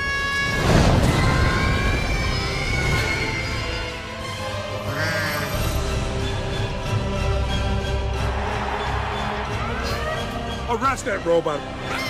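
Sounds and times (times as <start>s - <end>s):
dramatic film music: 0.0s - 12.0s.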